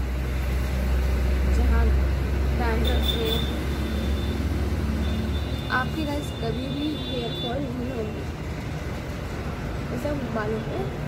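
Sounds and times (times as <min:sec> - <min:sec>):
motor vehicle passing: 0:00.0 - 0:07.0.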